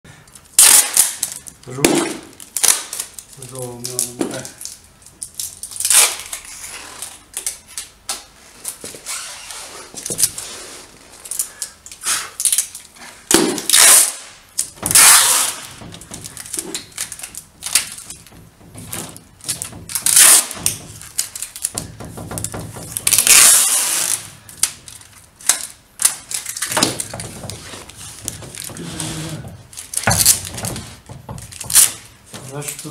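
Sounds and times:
adhesive tape pulled off roll: 0:00.6 - 0:01.5, 0:05.4 - 0:07.9, 0:13.4 - 0:18.3, 0:18.9 - 0:30.8.

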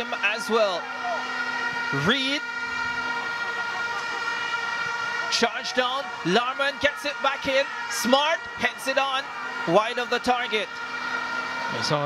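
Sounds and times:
plastic stadium horns droning: 0:00.0 - 0:12.0.

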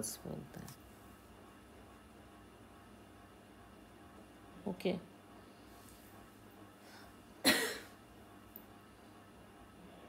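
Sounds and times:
person coughing: 0:07.4 - 0:08.0.

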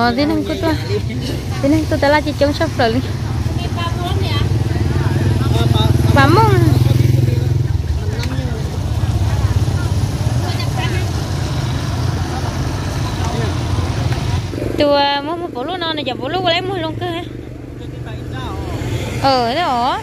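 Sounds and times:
car and motorcycle engines passing: 0:00.0 - 0:20.0
people talking: 0:00.0 - 0:20.0.

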